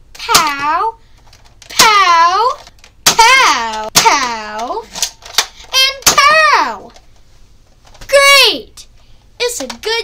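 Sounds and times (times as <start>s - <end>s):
child making shooting sounds: 0.2s - 1.0s, 1.7s - 5.0s, 5.6s - 7.0s, 8.1s - 8.8s.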